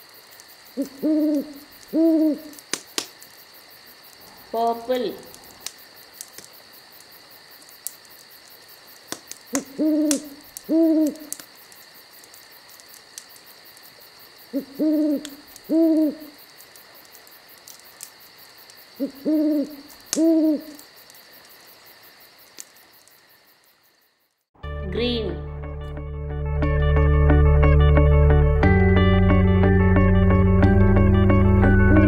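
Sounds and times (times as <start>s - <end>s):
owl hooting: 0.8s - 2.6s, 9.5s - 11.4s, 14.5s - 16.4s, 19.0s - 20.8s.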